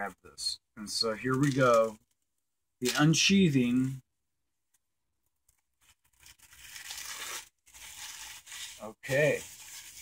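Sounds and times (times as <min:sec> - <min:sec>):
plastic shrink-wrap tearing: 0:05.8 - 0:10.0.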